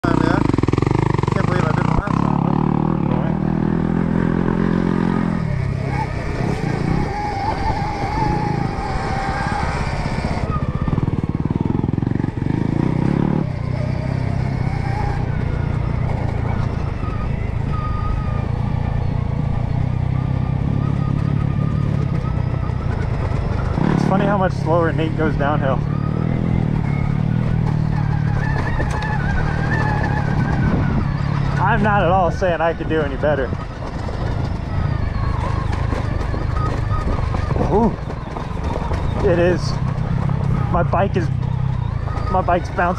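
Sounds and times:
rumble of tyres and chain: 0:00.0 - 0:42.9.

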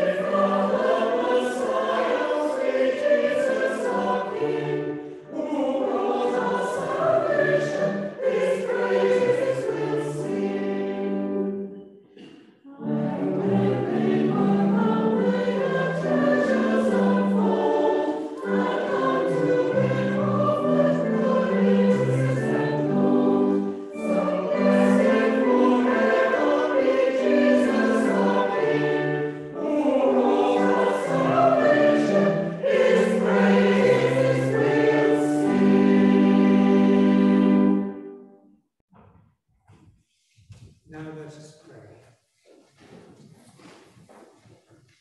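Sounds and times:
choir singing a carol: 0:00.0 - 0:38.3.

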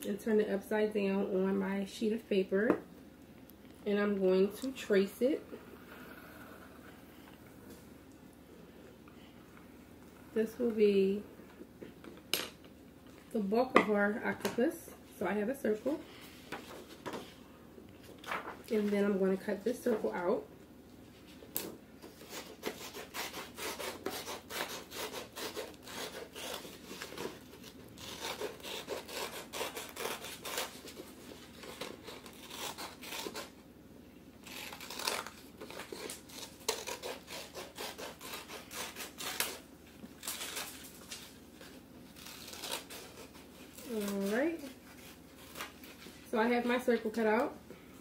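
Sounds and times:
paper rustling: 0:18.0 - 0:18.9
scissors snipping paper: 0:21.6 - 0:33.5, 0:34.4 - 0:39.6.

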